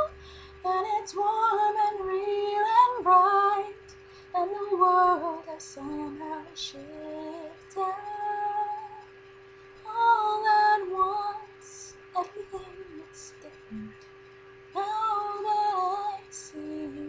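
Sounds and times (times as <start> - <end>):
woman singing gentle melody: 0.0 - 9.1, 9.8 - 14.0, 14.7 - 17.0.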